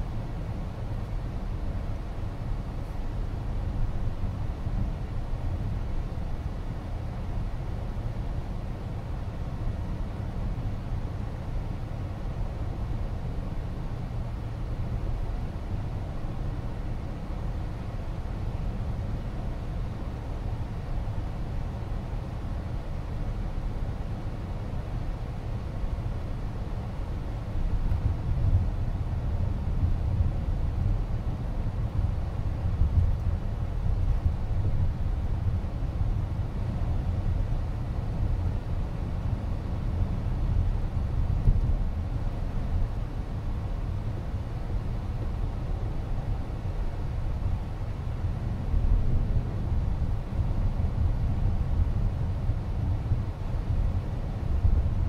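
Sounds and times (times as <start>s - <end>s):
road and tyre noise in car cabin: 0.0s - 55.0s.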